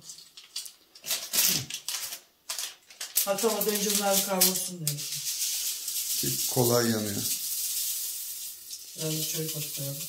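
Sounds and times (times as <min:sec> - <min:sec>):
herbs sizzling in metal pan: 0:03.0 - 0:10.0
stirring in metal pan: 0:03.4 - 0:10.0.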